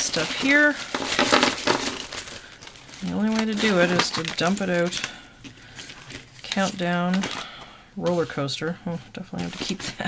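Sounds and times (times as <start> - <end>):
plastic bag crinkling: 0.0 - 8.5.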